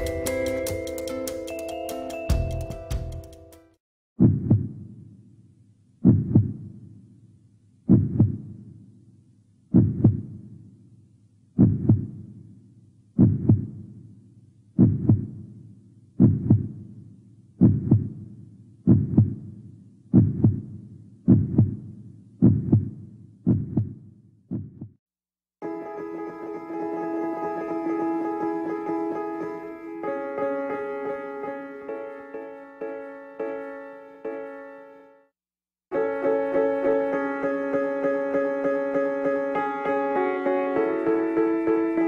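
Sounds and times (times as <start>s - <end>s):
heartbeat double thumps: 4.2s - 4.9s, 6.0s - 6.8s, 7.9s - 8.6s, 9.7s - 10.5s, 11.6s - 12.3s, 13.2s - 13.9s, 14.8s - 15.5s, 16.2s - 16.8s, 17.6s - 18.2s, 18.9s - 19.5s, 20.1s - 25.0s.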